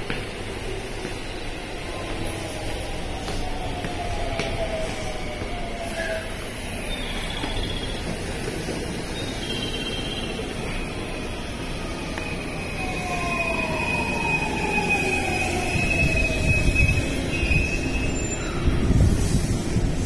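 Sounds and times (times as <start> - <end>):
train wheels rumbling on rails: 0.0 - 20.0
high brake squeal: 5.8 - 11.5, 12.3 - 19.5.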